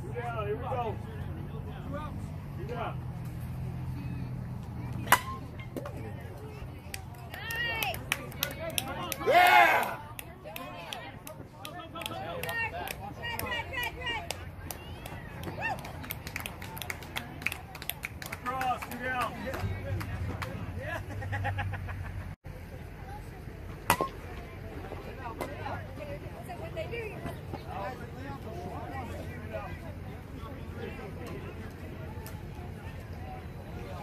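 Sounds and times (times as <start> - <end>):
players shouting and yelling: 7.0 - 16.2.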